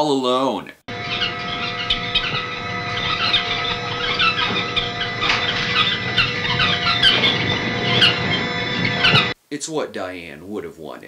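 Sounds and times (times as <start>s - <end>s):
caged birds chirping: 0.9s - 9.4s
steady hum: 0.9s - 9.4s.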